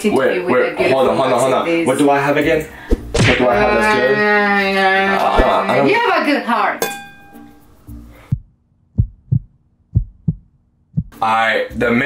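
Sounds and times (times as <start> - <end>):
heartbeat thumps: 8.3 - 11.2.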